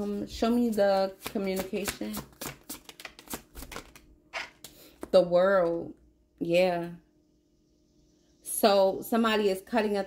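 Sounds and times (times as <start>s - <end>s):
deck of cards being shuffled: 0.0s - 5.1s.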